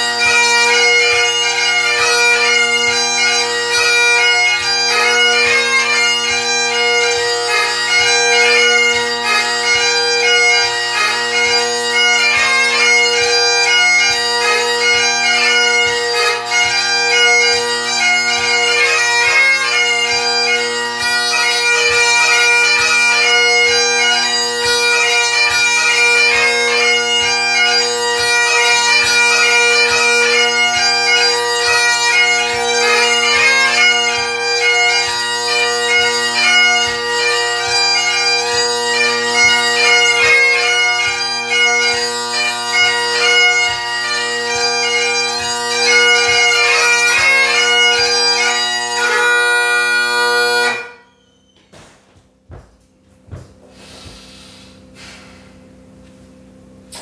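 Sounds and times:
bagpipe chanter melody: 0.0s - 52.0s
bagpipe drones humming: 0.0s - 52.0s.

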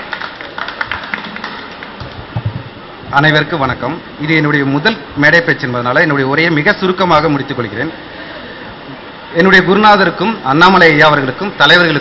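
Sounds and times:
hall background hiss: 0.0s - 12.0s.

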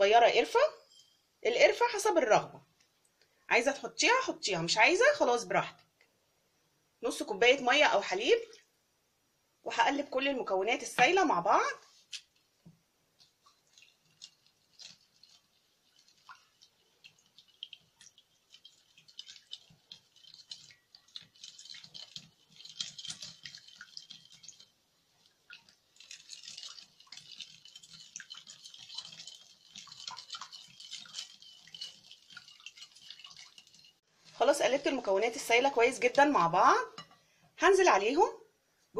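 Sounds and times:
whisk beating liquid in glass bowl: 13.2s - 34.0s.

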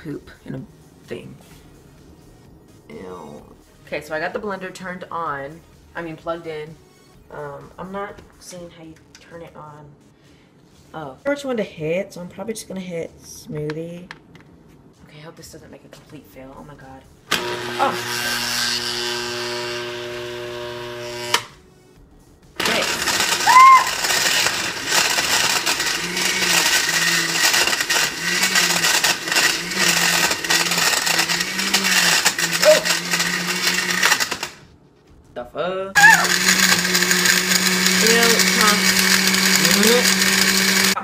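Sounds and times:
blender grinding ice: 17.3s - 21.6s, 22.6s - 34.6s, 36.0s - 41.0s.

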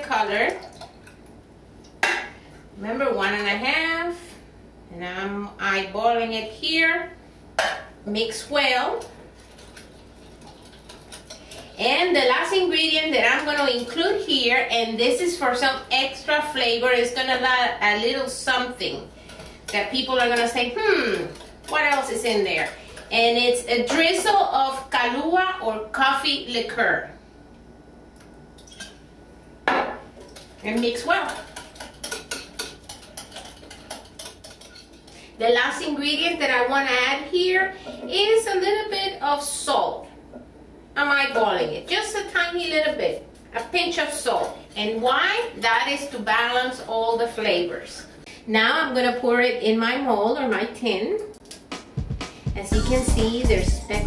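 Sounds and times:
whisk ticking against glass bowl: 30.3s - 35.1s.

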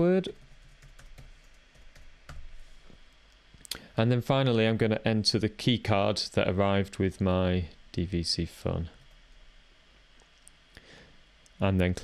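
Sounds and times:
keystrokes on computer keyboard: 0.3s - 2.4s.

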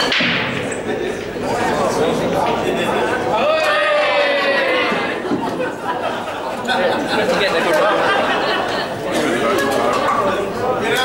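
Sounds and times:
chatter echoing in a hall: 0.0s - 11.0s.

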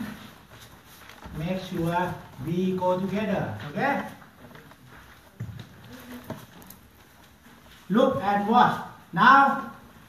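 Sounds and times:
footsteps on wooden floor: 0.0s - 7.9s.

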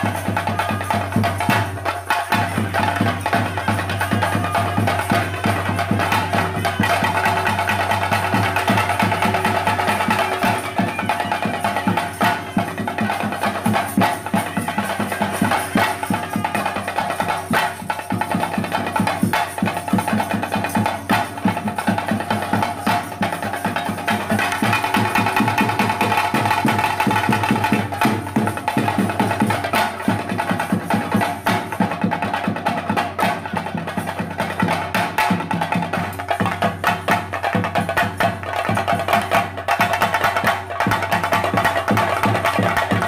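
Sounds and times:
drums beaten fast: 0.0s - 43.0s
hand cymbals clashing: 0.0s - 43.0s.

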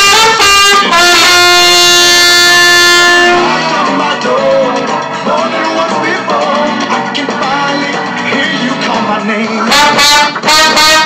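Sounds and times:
trumpet holding a long note: 0.0s - 4.0s, 9.7s - 11.0s
worship song backing track: 0.0s - 11.0s.

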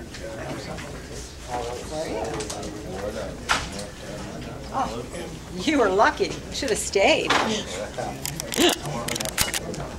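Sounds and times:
people chattering: 0.0s - 9.9s.

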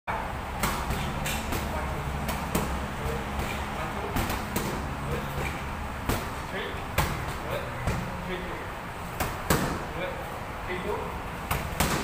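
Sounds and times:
boxing gloves smacking mitts: 0.5s - 8.2s, 9.1s - 9.9s, 11.4s - 12.0s.

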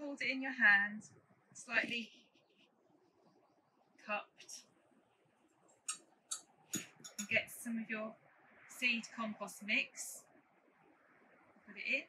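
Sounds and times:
metal spoon clinking on glass: 6.8s - 7.4s.

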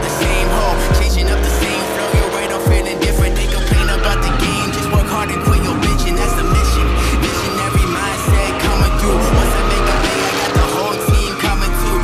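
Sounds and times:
hip-hop music with deep bass: 0.0s - 12.0s
truck engine revving: 0.0s - 12.0s
tyres squealing: 0.0s - 12.0s.

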